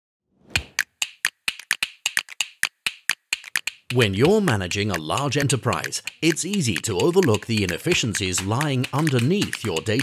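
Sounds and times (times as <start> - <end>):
rapid sharp clicks: 0.6 - 10.0
person speaking: 3.6 - 10.0.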